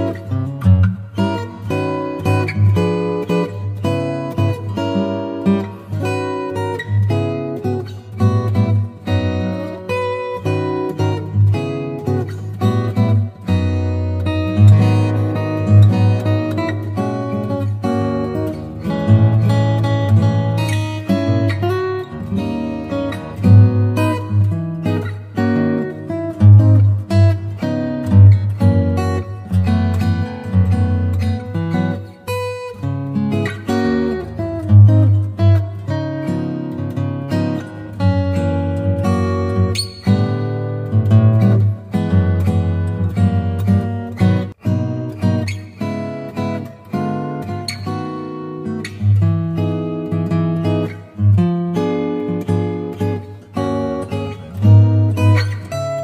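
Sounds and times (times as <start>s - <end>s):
acoustic guitar music: 0.0s - 56.0s.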